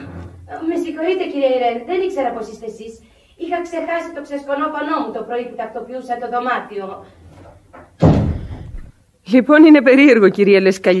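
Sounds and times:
door slamming shut: 7.8s - 8.9s.

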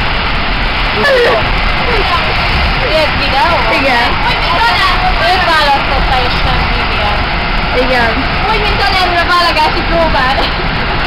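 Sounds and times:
vehicle interior running noise: 0.0s - 11.0s.

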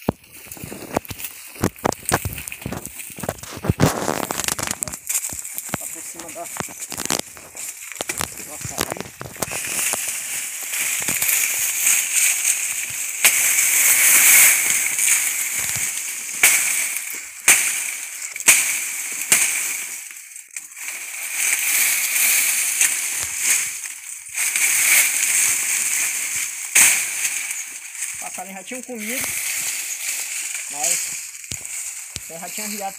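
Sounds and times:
dry leaf snapping: 0.0s - 32.9s
dry leaves rustling and crackling: 0.0s - 32.9s.

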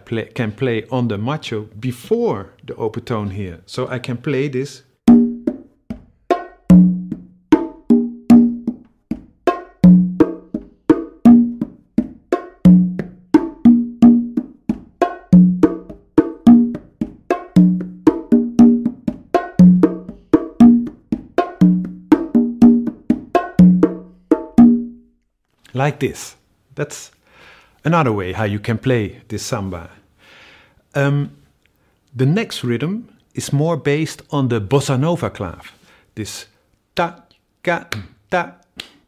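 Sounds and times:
higher bongo tones: 5.0s - 25.2s
bongo slaps and fingertip strokes: 5.1s - 24.9s
low conga tones: 5.1s - 25.0s.

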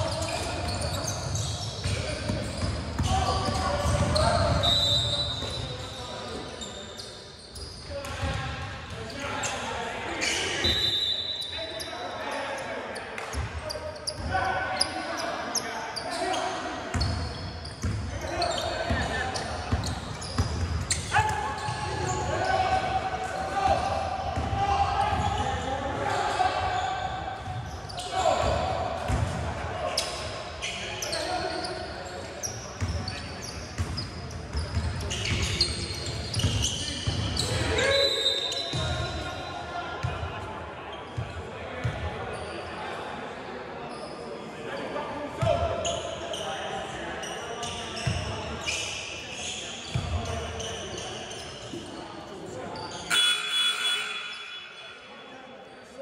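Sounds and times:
players' voices and shouts echoing: 0.0s - 56.0s.

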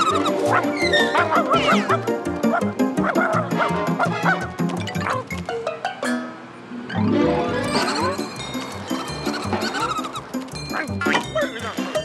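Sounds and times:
cartoon dog barking: 0.0s - 5.2s, 10.7s - 12.0s
upbeat background music: 0.0s - 5.6s.

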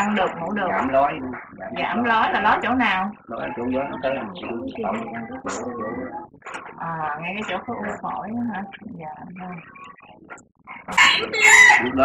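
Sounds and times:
rooster crowing: 10.9s - 12.0s.

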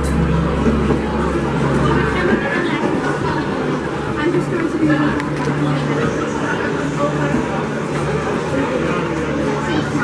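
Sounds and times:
crowd chatter in a hall: 0.0s - 10.0s.

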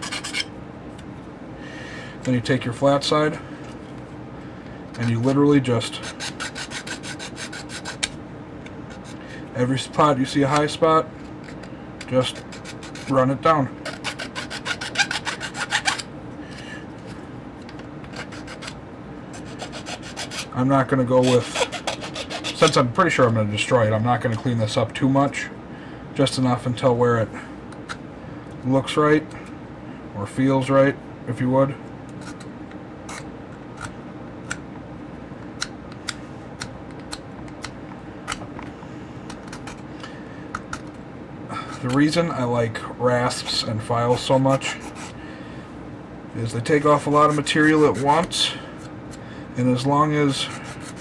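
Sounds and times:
hand file scraping plastic: 0.0s - 0.5s, 5.0s - 8.1s, 11.4s - 13.2s, 13.8s - 16.1s, 18.0s - 20.6s, 21.2s - 22.8s, 43.4s - 45.2s, 46.9s - 48.4s, 50.4s - 51.0s.

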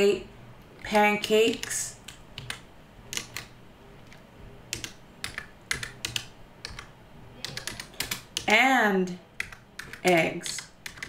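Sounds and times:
typing on computer keyboard: 0.8s - 8.6s, 9.4s - 11.0s.

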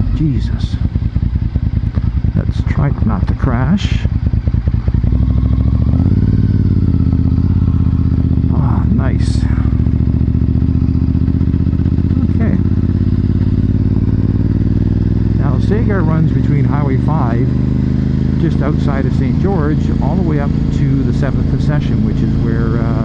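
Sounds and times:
motorcycle engine accelerating: 0.0s - 23.0s.

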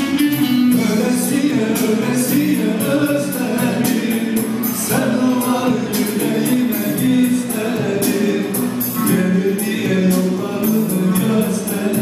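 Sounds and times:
electric lute: 0.0s - 12.0s
keyboards: 0.0s - 12.0s
man singing through a pa: 0.0s - 12.0s
steady beat: 0.0s - 12.0s.

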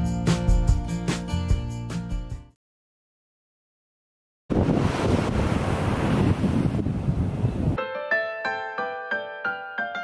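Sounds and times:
ocean surf: 4.5s - 7.8s
wind buffeting microphone: 4.5s - 7.8s
piano music: 7.8s - 10.0s.

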